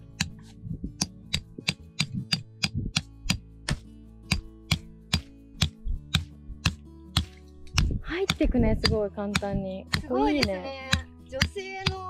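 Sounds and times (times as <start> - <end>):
guitar music: 0.0 - 12.0
hammer striking tent peg: 0.2 - 12.0.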